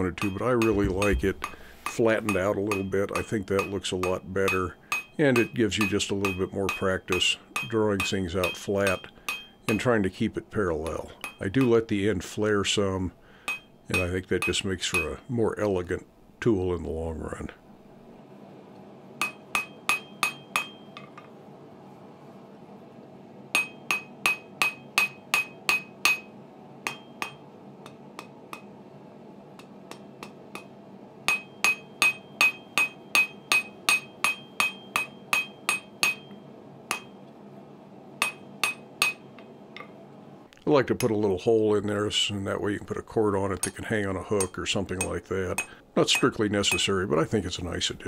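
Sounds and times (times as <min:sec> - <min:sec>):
hammer striking hot steel on anvil: 0:00.0 - 0:09.9, 0:10.6 - 0:12.0, 0:13.4 - 0:15.3, 0:19.2 - 0:21.3, 0:23.5 - 0:28.8, 0:29.6 - 0:37.2, 0:38.2 - 0:40.0, 0:43.6 - 0:46.9.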